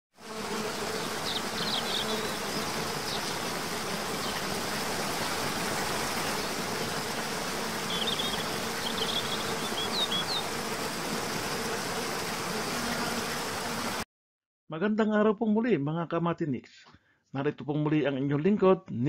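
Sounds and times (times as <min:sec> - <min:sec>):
high bird chirps: 0:01.2 - 0:03.4, 0:07.9 - 0:10.5.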